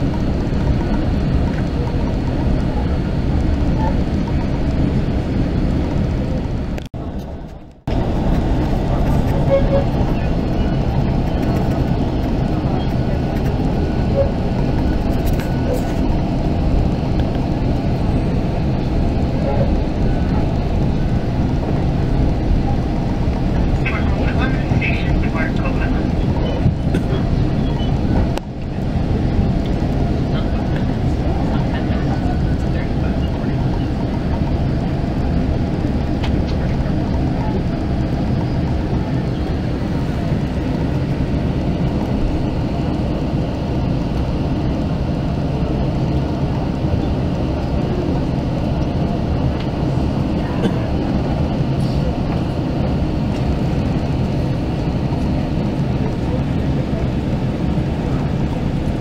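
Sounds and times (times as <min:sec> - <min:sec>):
train coach rumble: 0:00.0 - 0:59.0
voices: 0:00.0 - 0:59.0.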